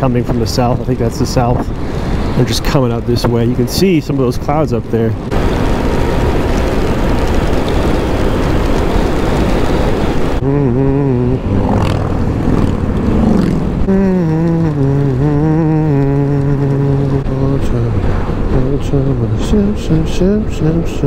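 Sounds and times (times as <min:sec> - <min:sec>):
wind rushing over microphone: 0:00.0 - 0:21.0
low wavering hum: 0:10.4 - 0:21.0.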